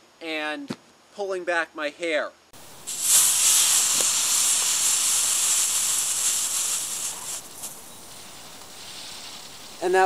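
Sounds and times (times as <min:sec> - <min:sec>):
smoke mix burning with hiss: 0:02.6 - 0:10.0.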